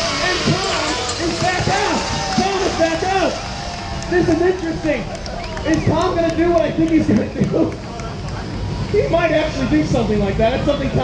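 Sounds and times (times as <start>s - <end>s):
people talking: 0.0s - 3.4s, 4.1s - 11.0s
outdoor crowd noise: 0.0s - 11.0s.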